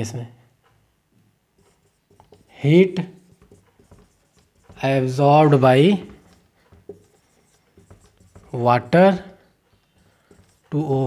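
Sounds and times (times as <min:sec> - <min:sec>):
marker scratching on whiteboard: 0:01.5 - 0:11.0
man speaking: 0:04.8 - 0:06.2, 0:08.5 - 0:09.4, 0:10.7 - 0:11.0.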